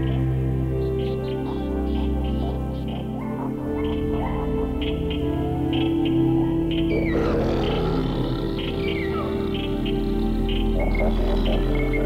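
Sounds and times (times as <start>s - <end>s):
ambient electronic music: 0.0s - 12.0s.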